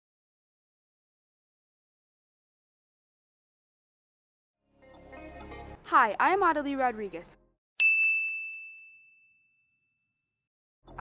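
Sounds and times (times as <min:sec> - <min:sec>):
bright bell ding: 0:07.8 - 0:09.8.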